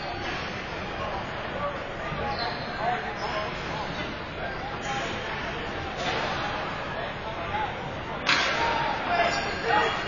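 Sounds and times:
chatter of people: 0.0s - 10.0s.

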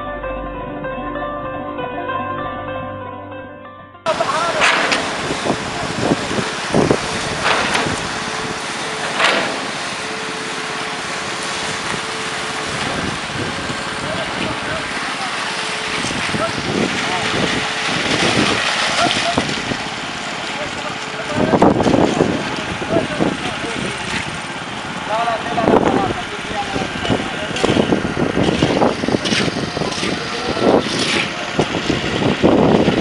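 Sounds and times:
machine humming: 4.1s - 30.8s
workers calling out: 4.1s - 32.1s.

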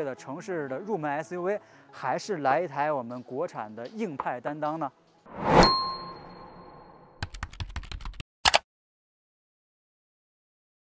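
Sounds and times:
whoosh: 5.3s - 7.2s
bright ding: 5.4s - 7.2s
keyboard typing clicks: 7.2s - 8.6s
sharp click: 8.4s - 8.6s.

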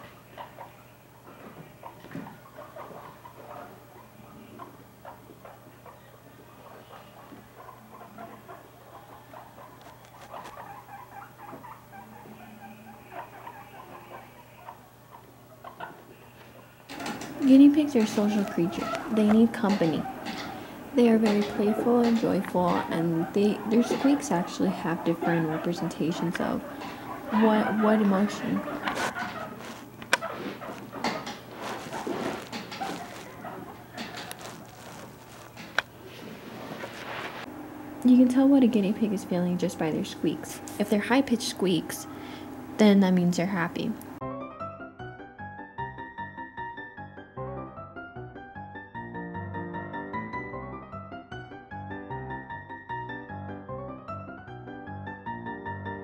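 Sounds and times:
guinea pigs pattering on carpet: 0.0s - 42.0s.

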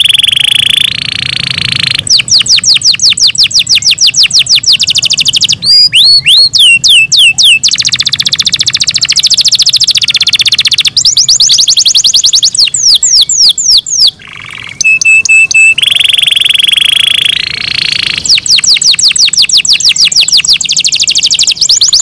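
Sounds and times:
canary singing: 0.0s - 22.0s.

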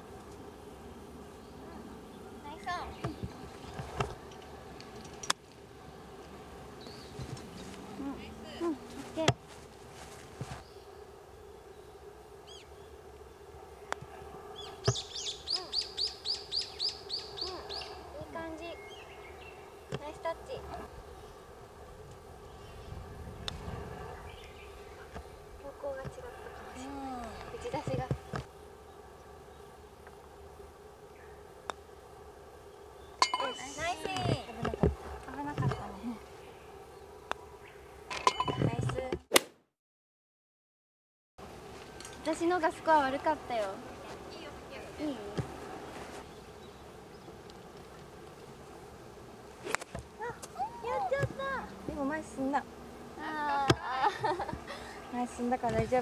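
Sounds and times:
flying insect buzzing: 0.0s - 39.3s, 41.4s - 56.0s
women exclaiming: 50.2s - 51.7s, 53.2s - 54.8s.

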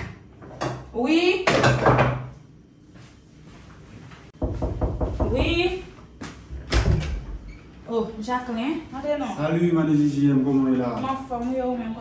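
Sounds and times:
knocking on wooden door: 4.4s - 5.6s.

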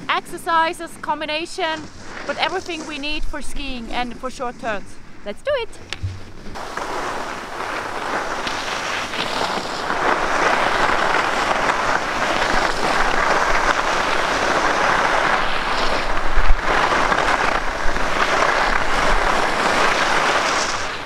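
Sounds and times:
skis scraping on snow: 0.0s - 4.8s, 6.5s - 21.0s
short thump: 5.8s - 6.6s.

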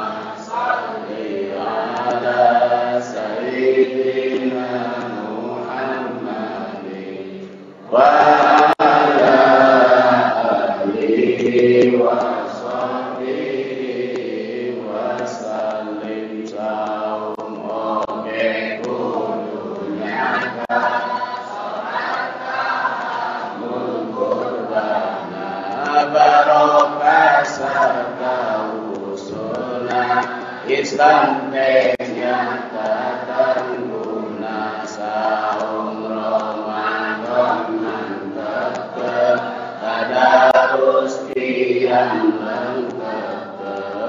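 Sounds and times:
group chanting over sound system: 0.0s - 44.0s.

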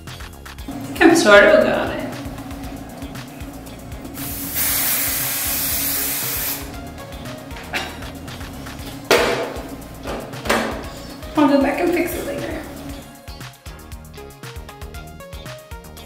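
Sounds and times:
quiet background music: 0.0s - 16.0s
aerosol spray hiss: 2.1s - 6.9s.

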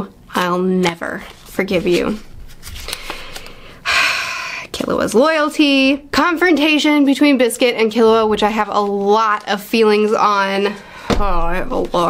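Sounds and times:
person speaking: 0.4s - 12.0s.

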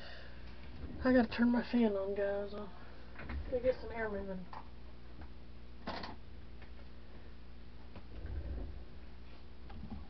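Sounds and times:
electric fan humming: 0.0s - 10.0s.

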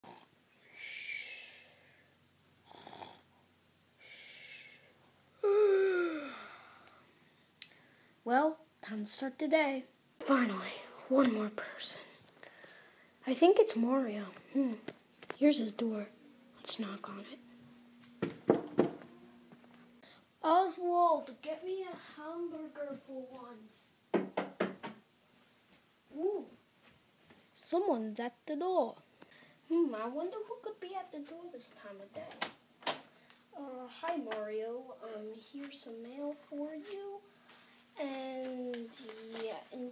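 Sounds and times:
person mock snoring: 0.0s - 1.8s, 2.6s - 3.2s, 4.0s - 6.7s
knocking on a door: 18.2s - 19.0s, 24.1s - 25.0s.

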